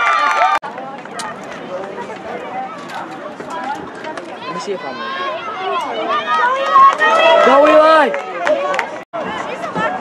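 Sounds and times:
spectators shouting and cheering: 0:00.0 - 0:10.0.

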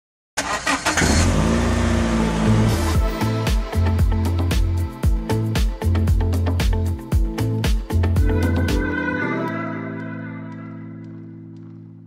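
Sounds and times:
car engine revving: 0:00.4 - 0:03.4.

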